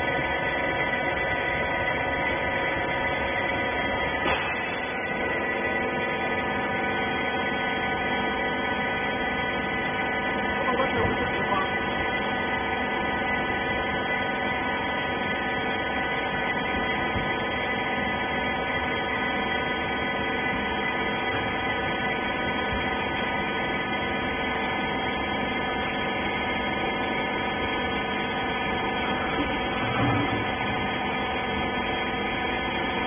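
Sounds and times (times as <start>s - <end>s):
baling machine humming: 0.0s - 33.0s.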